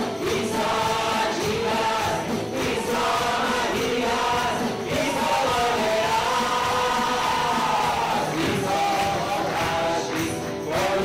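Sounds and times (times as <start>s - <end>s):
voices singing together: 0.0s - 11.0s
worship band playing: 0.0s - 11.0s.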